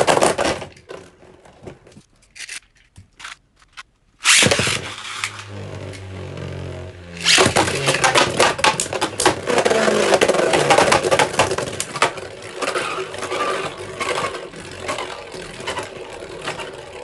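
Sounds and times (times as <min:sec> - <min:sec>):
spinning tops clicking together: 0:03.2 - 0:05.5
spinning tops whirring: 0:03.2 - 0:17.0.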